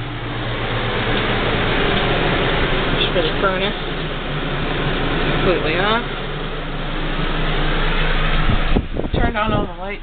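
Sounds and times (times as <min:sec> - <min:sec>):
furnace blower rushing air: 0:00.0 - 0:10.0
low hum: 0:00.0 - 0:10.0.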